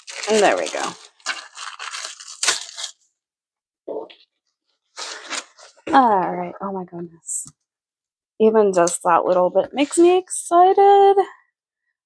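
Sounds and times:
plastic ripping: 0:00.0 - 0:03.0
plastic sleeve crinkling: 0:00.0 - 0:03.0.

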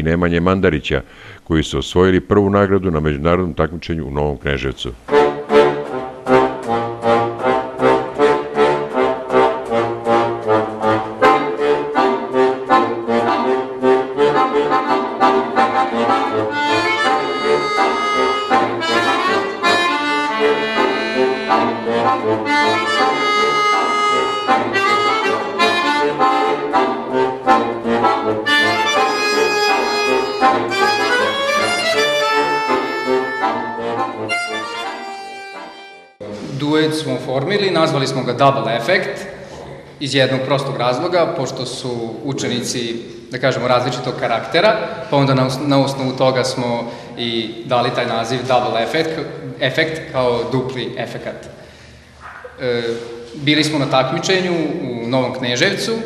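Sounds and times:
accordion duet: 0:00.0 - 0:36.5.

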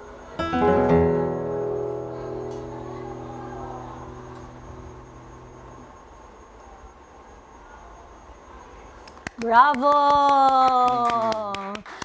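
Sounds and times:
classical guitar chord ringing: 0:00.0 - 0:06.3.

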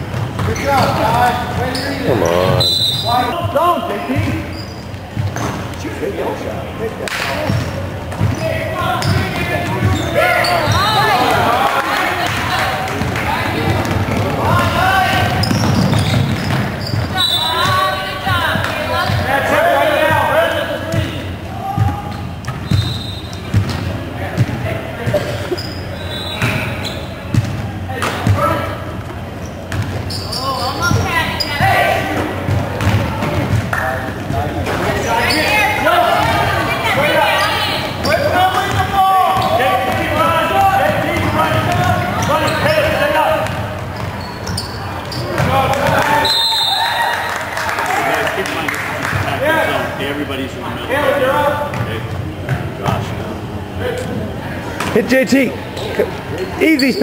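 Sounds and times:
indistinct shouting: 0:02.0 - 0:03.3.

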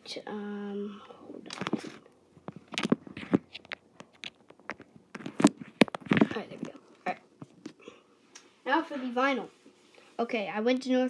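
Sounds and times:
phone handling noise: 0:01.5 - 0:06.4
fingers tapping and rubbing microphone: 0:01.5 - 0:07.8.

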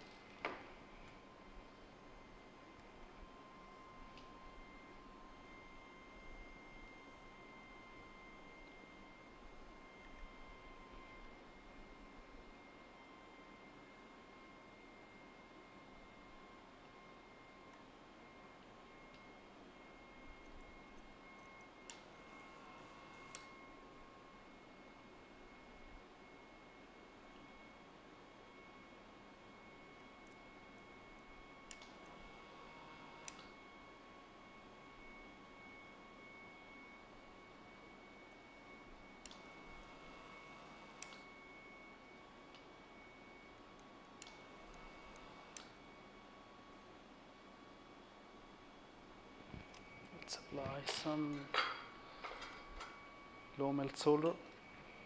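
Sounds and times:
thin high whine: 0:47.8 - 0:55.0.

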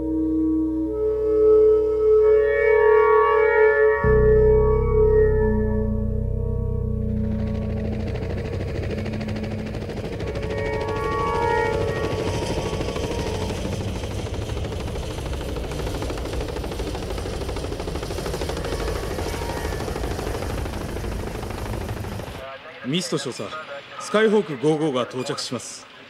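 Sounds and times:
music with held notes: 0:00.0 - 0:13.8
aircraft rumbling drone: 0:00.0 - 0:24.1.

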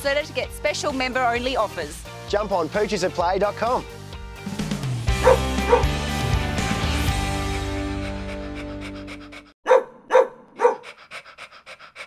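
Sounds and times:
dog barking: 0:05.2 - 0:05.9, 0:09.6 - 0:10.9
dog panting rapidly: 0:07.5 - 0:09.6, 0:10.6 - 0:12.0.

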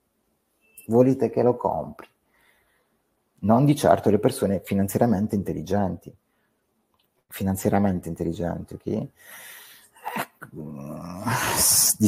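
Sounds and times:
loud hissing breath: 0:09.2 - 0:09.9
man groaning: 0:10.0 - 0:12.0.

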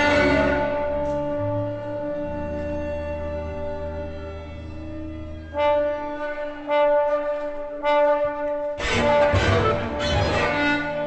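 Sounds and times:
brass chords: 0:00.0 - 0:04.1, 0:05.4 - 0:11.0
chamber orchestra brass and strings: 0:00.0 - 0:11.0.

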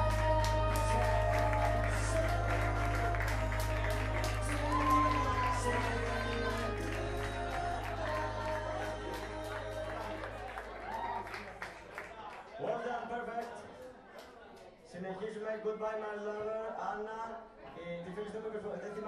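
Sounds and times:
karaoke track with held notes: 0:00.0 - 0:10.8
audience clapping: 0:00.0 - 0:12.6.

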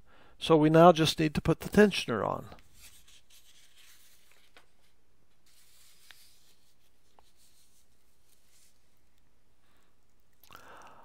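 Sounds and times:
faint rubbing: 0:02.6 - 0:09.2.

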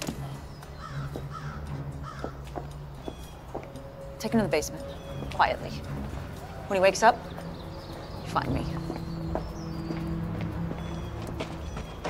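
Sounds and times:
crow cawing: 0:00.6 - 0:03.6.

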